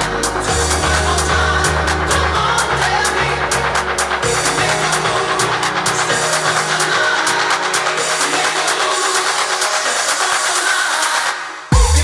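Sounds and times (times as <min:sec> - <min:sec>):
electronic dance music without bass: 0:00.0 - 0:12.0.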